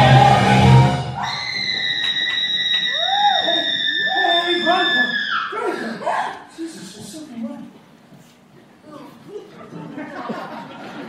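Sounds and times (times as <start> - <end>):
audience cheering: 0.0 - 5.5.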